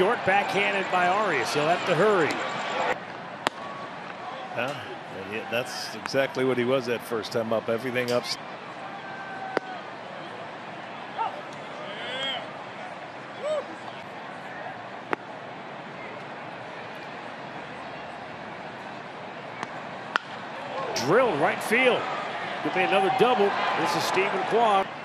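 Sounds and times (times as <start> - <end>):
distant fans shouting: 0.0 - 6.0, 20.7 - 25.0
bat cracking on ball: 19.6 - 20.4.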